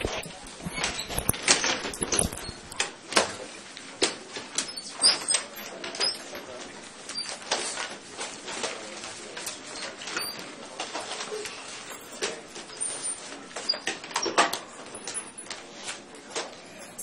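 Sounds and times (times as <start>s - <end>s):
knocks and clicks: 0.0s - 2.9s, 16.8s - 17.0s
rustling: 0.0s - 2.9s
faint voices: 0.0s - 17.0s.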